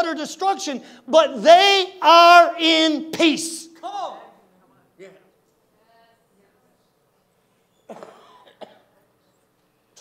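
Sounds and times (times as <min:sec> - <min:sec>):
person coughing: 0:07.9 - 0:09.0.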